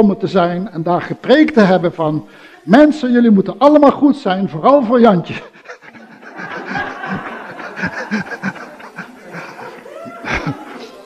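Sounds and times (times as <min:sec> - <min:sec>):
crowd laughing: 0:05.4 - 0:11.0.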